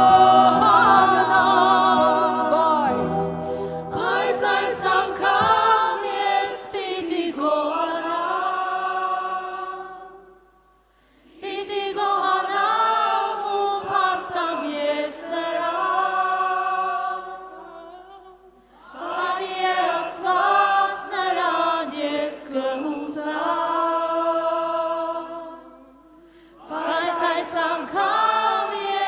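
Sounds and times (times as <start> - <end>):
group singing a worship song: 0.0 - 29.0.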